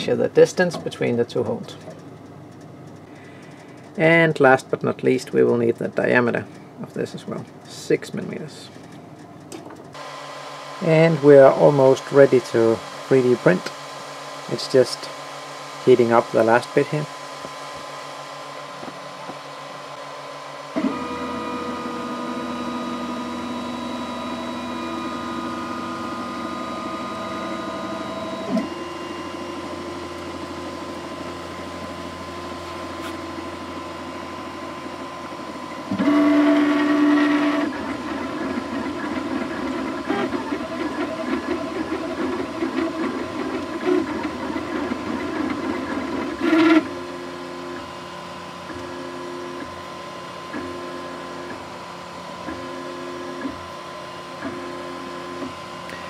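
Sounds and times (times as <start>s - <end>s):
three d printer hum: 0.0s - 56.0s
stepper motors whining: 10.0s - 56.0s.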